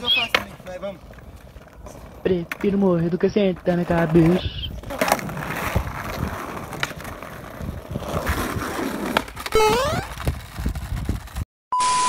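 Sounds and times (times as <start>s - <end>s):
skateboard wheels squealing: 0.0s - 2.2s, 3.8s - 11.4s
skateboard wheels rolling on asphalt: 0.0s - 11.4s.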